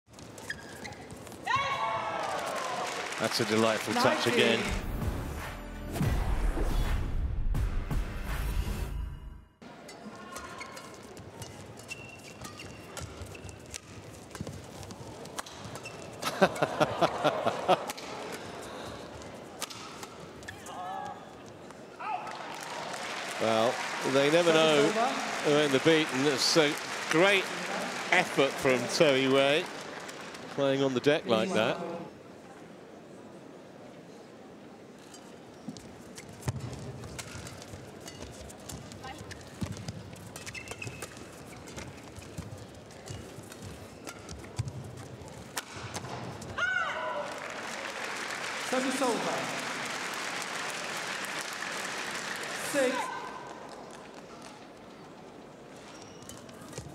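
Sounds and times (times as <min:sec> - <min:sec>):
shoes squeaking on court: 0:00.1 - 0:01.6, 0:09.8 - 0:16.3, 0:35.1 - 0:46.5, 0:53.5 - 0:56.9
crowd cheering: 0:01.4 - 0:04.9, 0:16.2 - 0:18.4, 0:22.0 - 0:31.1, 0:46.6 - 0:53.7.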